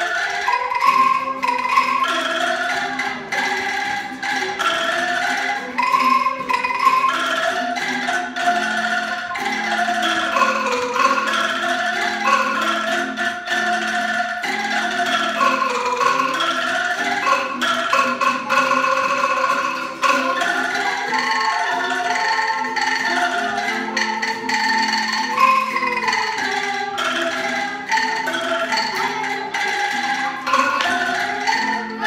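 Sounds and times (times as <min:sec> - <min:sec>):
bamboo angklung ensemble melody: 0:00.0 - 0:32.0
guitar accompaniment: 0:00.0 - 0:32.0.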